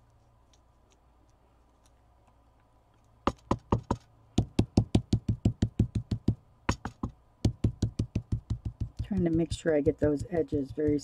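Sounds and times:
ink applicator tapping on stencil: 3.3s - 11.0s.

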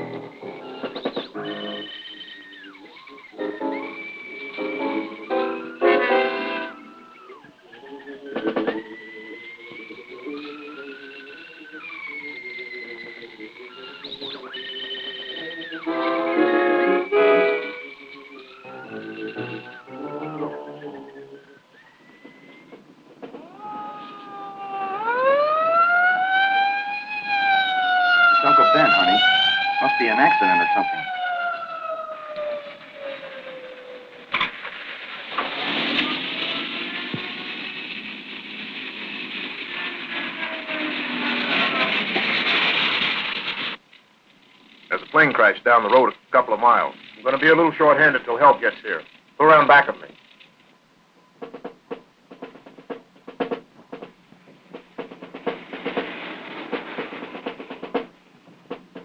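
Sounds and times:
siren wailing: 0.0s - 34.4s, 35.6s - 38.1s, 38.9s - 43.6s
film music: 0.0s - 43.2s, 51.4s - 59.0s
car engine and road noise: 31.2s - 45.3s.

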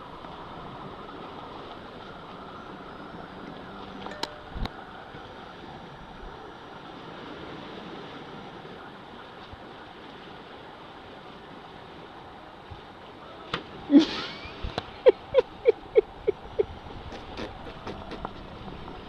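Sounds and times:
wind noise on microphone: 0.0s - 10.6s, 13.6s - 19.0s
sea washing on rocky shore: 0.0s - 19.0s
wind: 0.0s - 19.0s.

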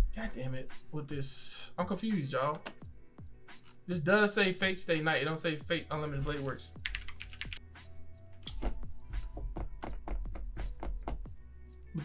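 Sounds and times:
faint background music: 0.0s - 12.0s
computer keyboard typing: 6.8s - 7.6s.

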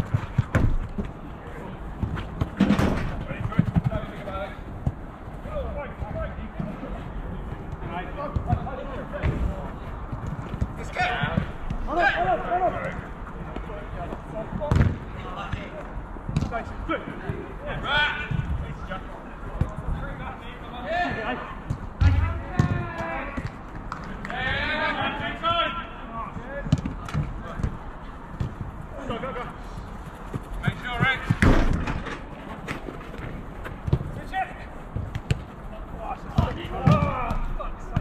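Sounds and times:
footballers shouting: 3.2s - 15.9s, 16.5s - 31.7s, 33.7s - 38.0s
ball being kicked: 31.3s - 32.2s, 35.0s - 35.5s, 36.3s - 38.0s.

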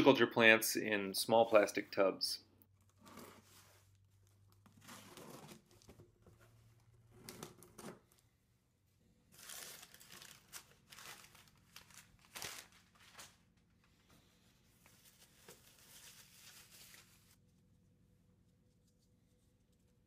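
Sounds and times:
paper packing crinkling: 9.3s - 13.7s, 14.8s - 17.4s.

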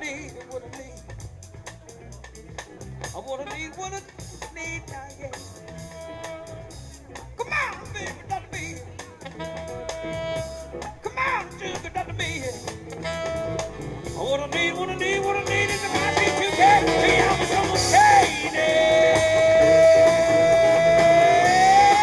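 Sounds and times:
live band playing instrumental: 0.0s - 22.0s
long held high note: 9.3s - 11.0s.

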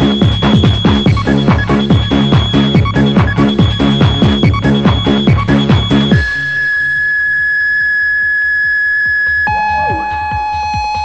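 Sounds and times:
techno with synth and kick drum: 0.0s - 11.0s.

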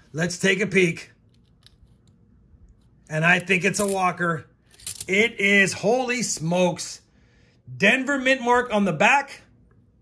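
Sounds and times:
coins clicking together: 3.4s - 4.0s, 4.7s - 5.1s.

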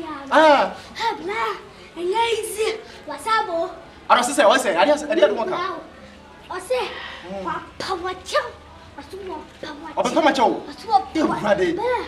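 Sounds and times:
girl speaking: 0.0s - 0.3s, 1.0s - 3.8s, 6.5s - 12.0s.

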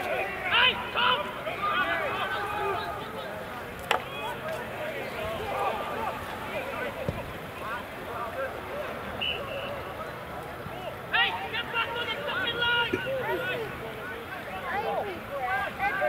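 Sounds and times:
spectators and players shouting: 0.0s - 16.0s.

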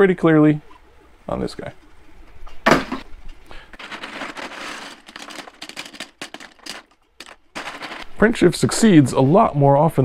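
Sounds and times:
plastic parts clattering into bucket: 3.7s - 8.1s.

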